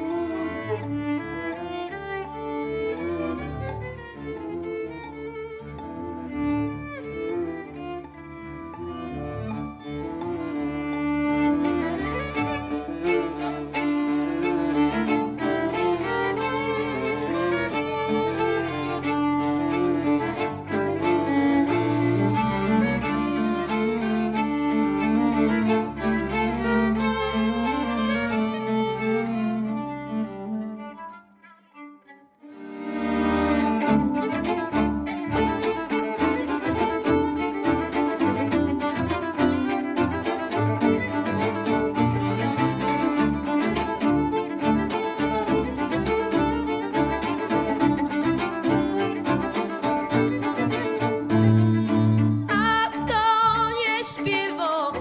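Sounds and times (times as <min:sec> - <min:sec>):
folk string band playing: 0:00.0 - 0:55.0.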